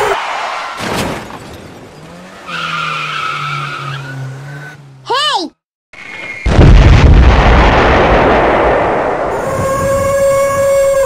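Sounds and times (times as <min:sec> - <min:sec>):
boom with long rumble: 0:06.5 - 0:09.9.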